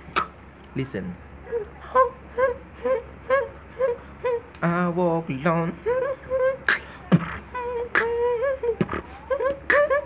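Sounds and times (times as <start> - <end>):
beatboxer vocal notes: 0.0 - 0.4, 4.2 - 10.0.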